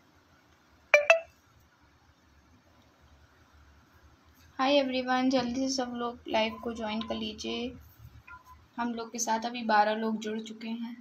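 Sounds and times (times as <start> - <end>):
short electronic beeps: 1.0 - 1.3.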